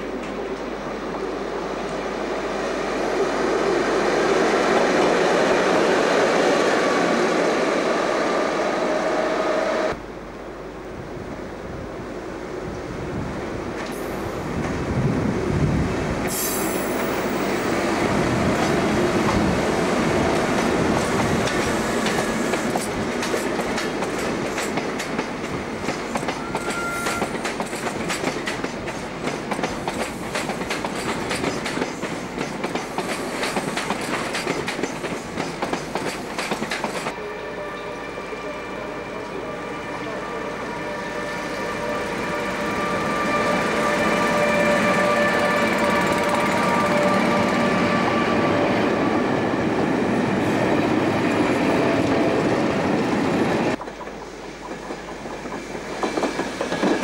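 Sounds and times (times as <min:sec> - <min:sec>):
electric locomotive whine: 0:00.0 - 0:29.2, 0:36.6 - 0:57.0
train wheels clicking over rail joints: 0:16.2 - 0:19.5, 0:20.4 - 0:37.1, 0:50.7 - 0:57.0.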